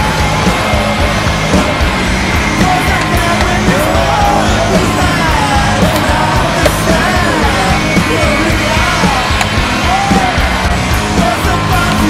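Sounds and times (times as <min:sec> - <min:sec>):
rock song with singing: 0:00.0 - 0:12.0.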